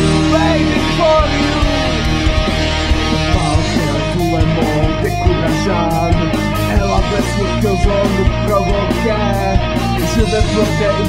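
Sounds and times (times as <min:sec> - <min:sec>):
rock guitar over a beat: 0:00.0 - 0:11.0.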